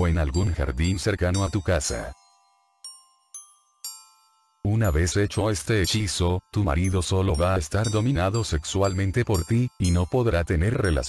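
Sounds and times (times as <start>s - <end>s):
bell-like chime notes: 0.0s - 11.0s.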